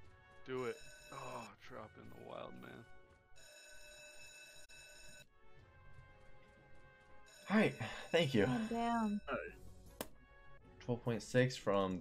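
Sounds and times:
slot machine electronic chime: 0:00.6 - 0:02.8, 0:07.3 - 0:09.4.

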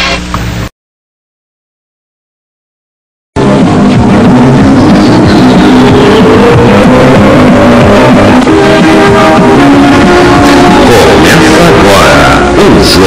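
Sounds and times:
news theme music with percussion: 0:03.7 - 0:13.0.

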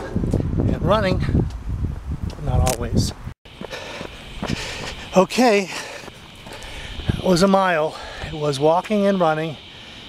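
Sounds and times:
low outdoor background: 0:00.0 - 0:10.0
footsteps on asphalt: 0:03.5 - 0:08.4.

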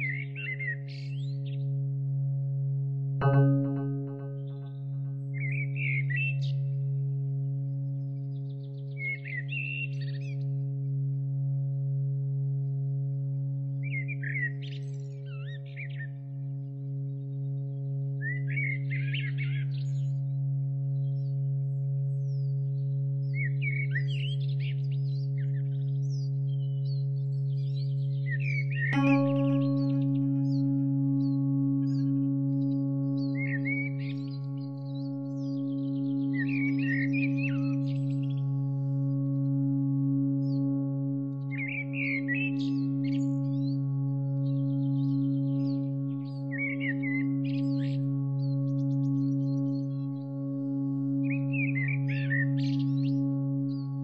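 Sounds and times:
low drone: 0:00.0 - 0:08.8, 0:28.6 - 0:54.0
ringing bell-like tone: 0:03.2 - 0:06.2, 0:28.9 - 0:54.0.

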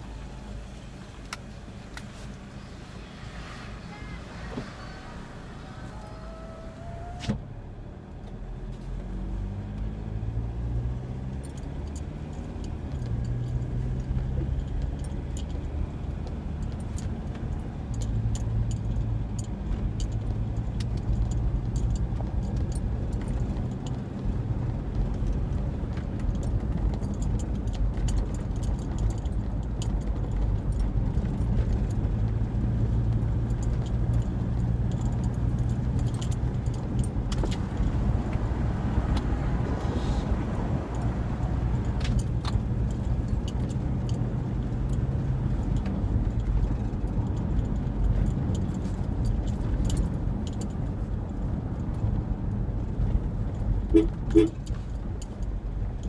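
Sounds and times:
car engine and road noise: 0:00.0 - 0:56.0
light clicks and rattles: 0:24.8 - 0:38.5, 0:40.9 - 0:56.0.

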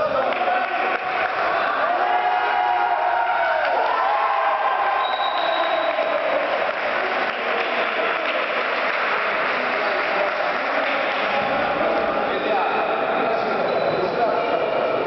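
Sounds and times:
echoing sports hall din: 0:00.0 - 0:15.0.

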